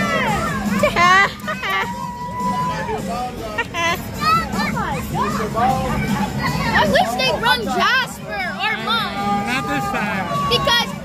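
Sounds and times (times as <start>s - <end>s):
children shouting and chattering: 0.0s - 11.0s.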